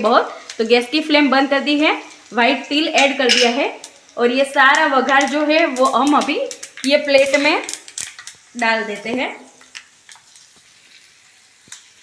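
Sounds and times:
oil sizzling: 0.0s - 12.0s.

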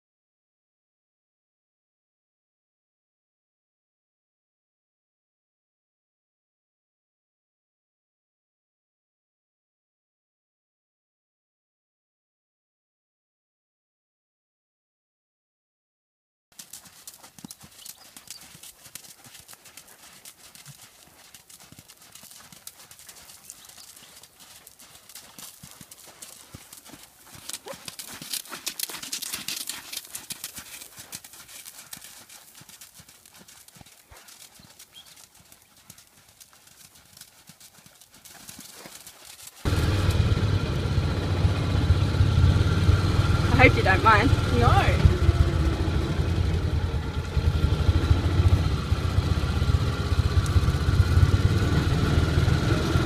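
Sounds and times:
horse hooves clopping: 16.6s - 53.0s
loud low rumble: 39.7s - 53.0s.

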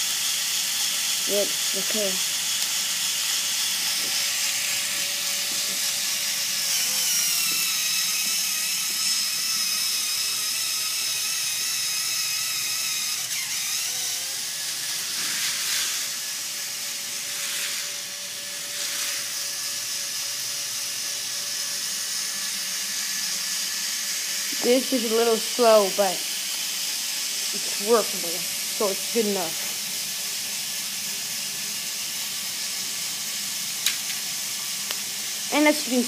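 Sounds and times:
small electric motors whining: 0.0s - 36.0s.

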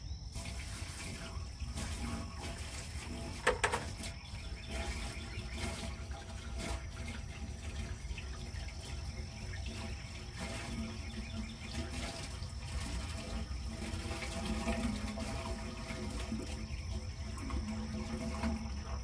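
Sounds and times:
water splashing down a pipe: 0.0s - 19.0s.

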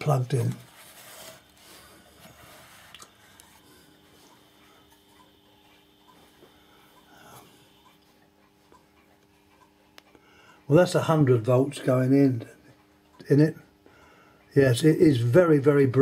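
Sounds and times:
faint electrical hum: 0.0s - 16.0s.

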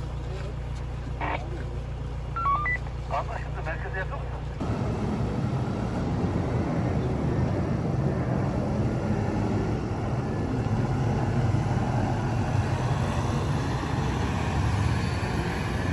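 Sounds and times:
van engine rumbling: 0.0s - 15.9s.

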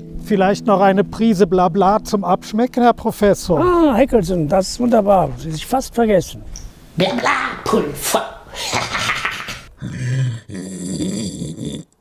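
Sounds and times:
man laughing deeply: 8.5s - 11.2s.

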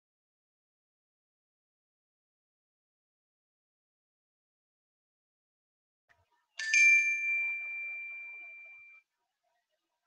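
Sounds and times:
electronic bell ding: 6.6s - 9.0s.

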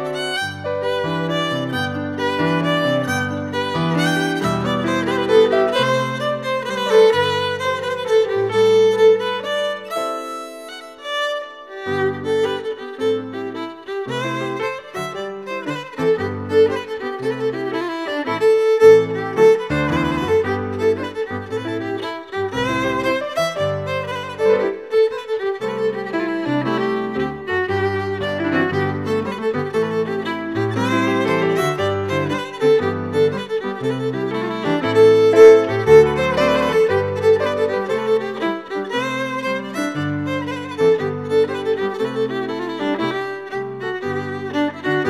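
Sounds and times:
fiddle playing dance tune: 0.0s - 45.0s
piano accompaniment: 0.0s - 45.0s.

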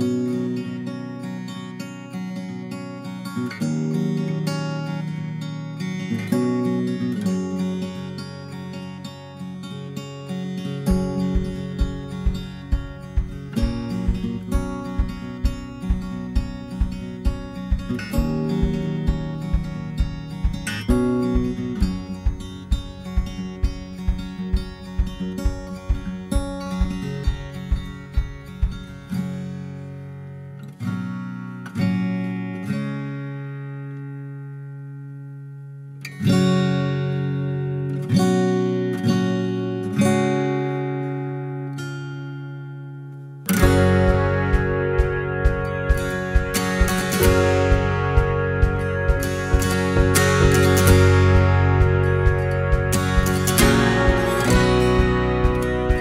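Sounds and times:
acoustic guitar picking: 0.0s - 56.0s.

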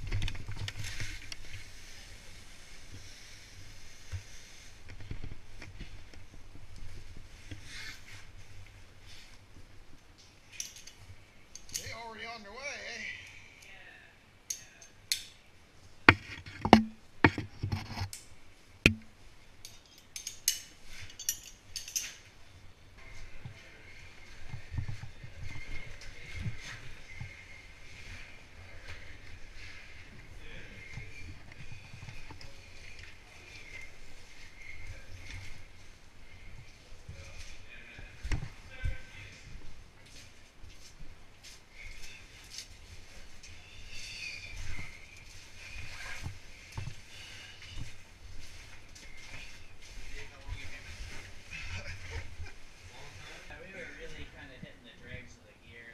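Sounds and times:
sharp knocks: 18.9s - 19.1s.

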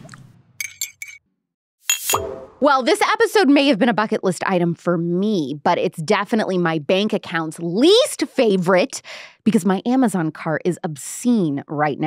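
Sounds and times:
teaspoon clinking against teacup: 0.6s - 1.2s.

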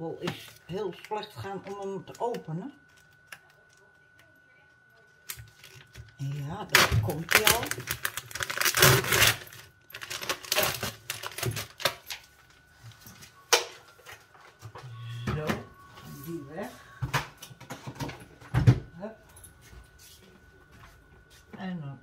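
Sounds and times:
plastic packaging crinkling: 5.1s - 12.6s.

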